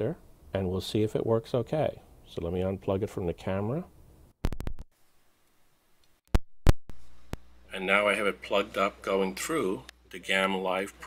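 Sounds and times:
microphone plug pops: 4.4 - 4.9, 6.3 - 7.4.

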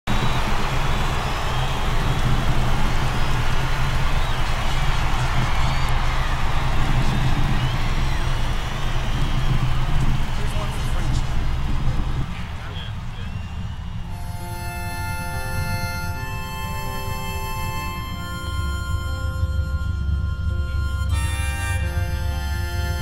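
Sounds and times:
motorboat engine running: 0.1 - 23.0.

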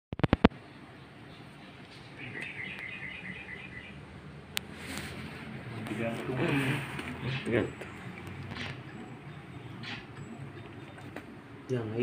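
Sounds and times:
small bird chirping: 0.2 - 4.0, 7.2 - 11.1.

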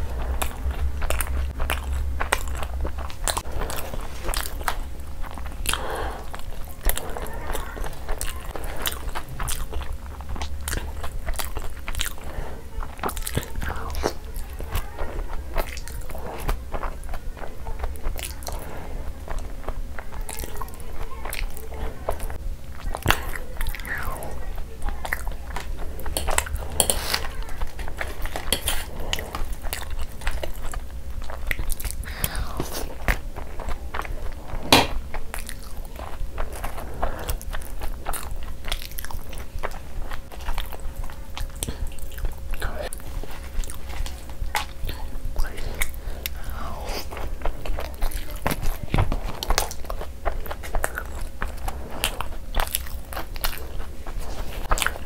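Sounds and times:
faint steady hum: 0.0 - 55.0
wet chewing: 0.0 - 55.0.

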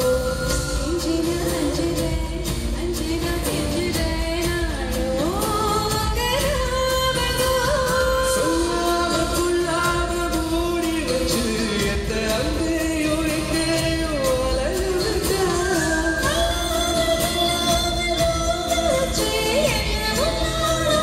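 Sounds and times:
live band with drums and guitars: 0.0 - 21.0.

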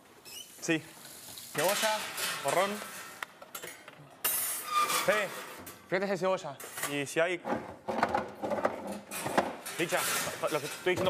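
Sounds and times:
metal racks scraping: 1.6 - 6.0, 6.6 - 11.0.

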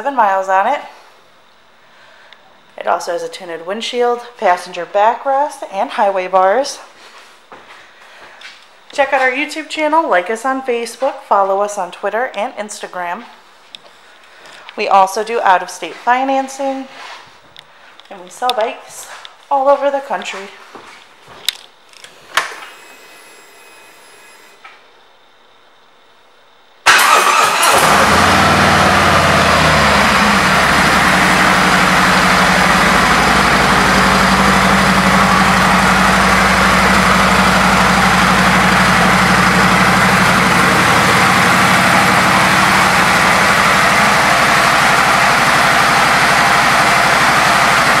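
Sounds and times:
starter motor cranking: 26.9 - 48.0
motorcycle engine idling: 28.1 - 48.0.

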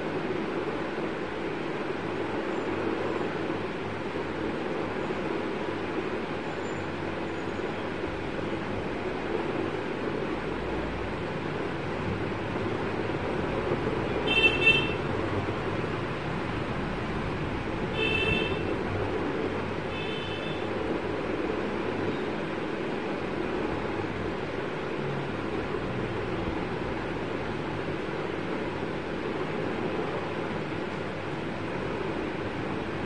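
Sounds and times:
steady background noise: 0.0 - 33.0.

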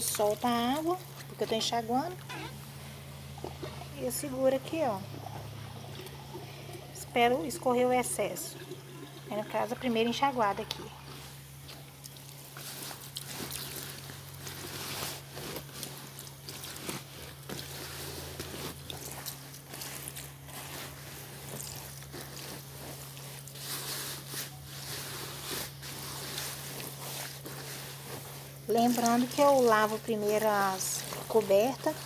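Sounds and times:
steady low hum: 0.0 - 32.0
wet fabric squishing: 0.0 - 32.0.

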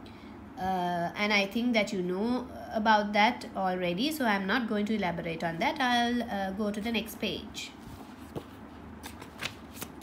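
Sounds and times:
paper pages turning: 7.8 - 10.0.

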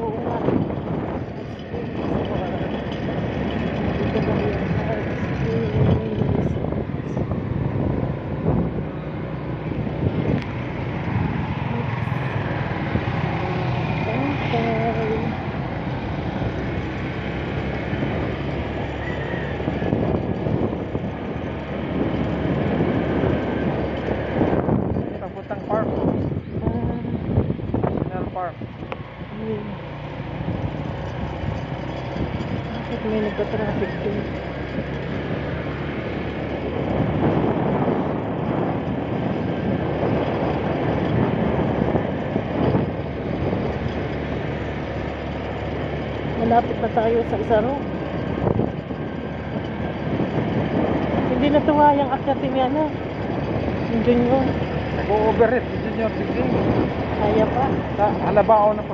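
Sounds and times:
motorcycle engine running: 0.0 - 58.9.

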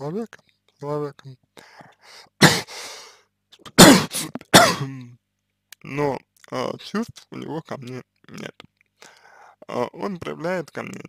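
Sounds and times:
man coughing: 2.4 - 2.8, 3.8 - 5.0.

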